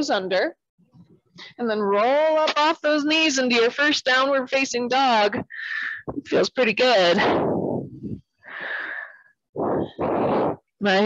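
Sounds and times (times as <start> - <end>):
louder breath: 7.4 - 10.6.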